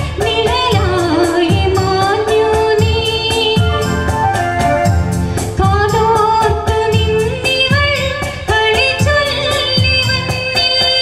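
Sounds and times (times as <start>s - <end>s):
karaoke backing track with beat: 0.0s - 11.0s
woman singing into a microphone: 0.0s - 11.0s.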